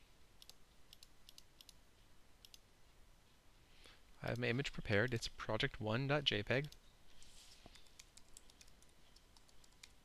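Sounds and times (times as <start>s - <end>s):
computer mouse clicks: 0.4s - 1.8s, 2.4s - 2.6s, 6.6s - 6.8s, 7.6s - 10.0s.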